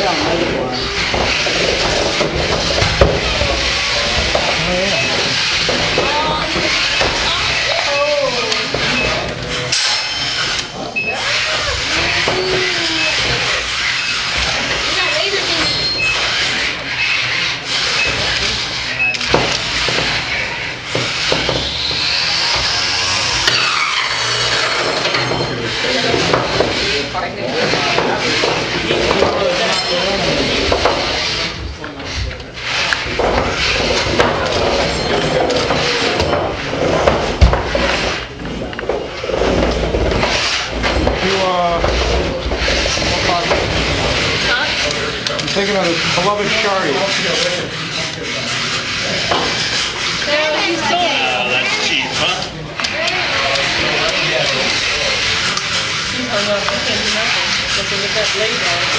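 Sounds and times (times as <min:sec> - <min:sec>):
small electric motors whining: 0:00.0 - 0:36.2
robots scraping and knocking: 0:00.0 - 0:58.9
spectators' voices: 0:00.0 - 0:58.9.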